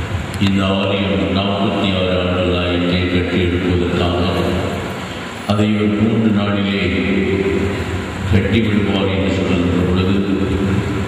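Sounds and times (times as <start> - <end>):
man speaking over public address: 0.4 - 11.0.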